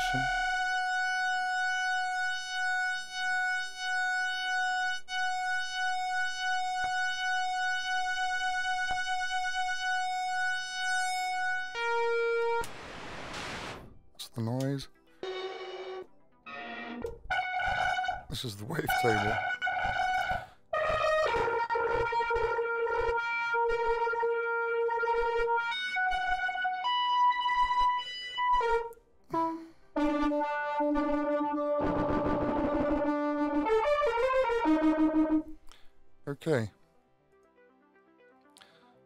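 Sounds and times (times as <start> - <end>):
buzzy synth tones: 0.0 - 13.8, 17.3 - 35.6.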